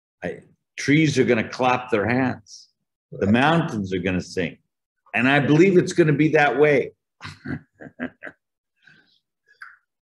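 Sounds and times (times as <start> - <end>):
man laughing: 7.2 - 8.5.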